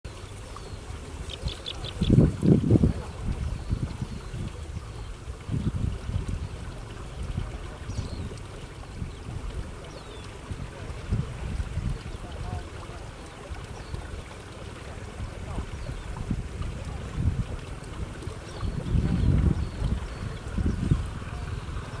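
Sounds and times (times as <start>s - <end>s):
nestlings chirping: 1.2s - 2.2s.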